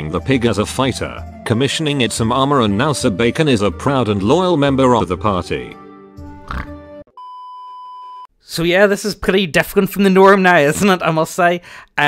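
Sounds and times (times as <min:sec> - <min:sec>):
background music: 0:00.0 - 0:07.1
pig oink sound effect: 0:06.4 - 0:06.8
steady test-tone beep: 0:07.2 - 0:08.3.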